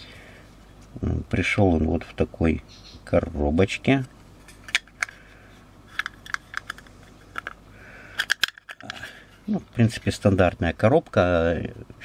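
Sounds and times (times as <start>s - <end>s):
plastic case clicking: 6.0s - 7.6s, 8.2s - 9.0s.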